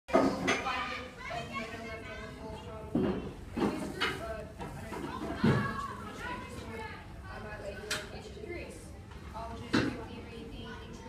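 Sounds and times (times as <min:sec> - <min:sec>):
children chattering: 0:00.1 - 0:11.0.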